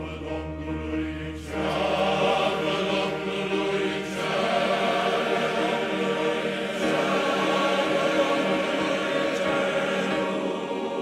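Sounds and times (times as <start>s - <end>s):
men's choir singing a hymn: 0.0s - 11.0s.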